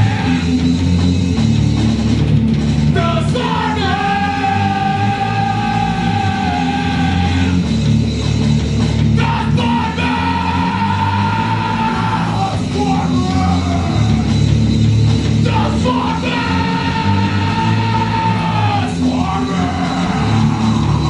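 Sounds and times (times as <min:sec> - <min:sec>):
bass guitar: 0:00.0 - 0:21.0
electric guitar: 0:00.0 - 0:21.0
electronic drum kit: 0:00.0 - 0:21.0.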